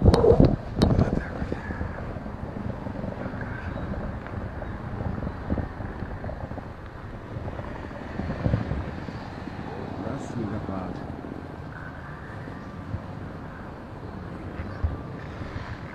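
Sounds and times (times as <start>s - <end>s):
traffic: 0.0s - 15.9s
wind buffeting microphone: 0.0s - 15.9s.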